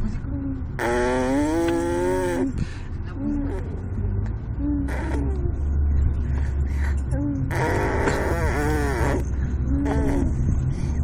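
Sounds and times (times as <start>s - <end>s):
baby vocalizing: 4.7s - 5.6s, 7.4s - 10.4s.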